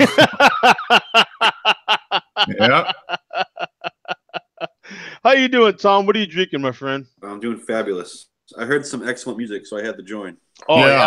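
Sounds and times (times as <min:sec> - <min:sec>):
man laughing in bursts: 0:00.0 - 0:04.9
man breathing: 0:04.8 - 0:05.2.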